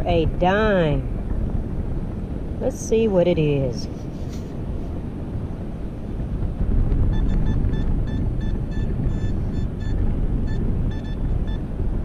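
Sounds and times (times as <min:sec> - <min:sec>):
wind rumble on microphone: 0:00.0 - 0:12.0
metal detector beeps: 0:07.1 - 0:11.6.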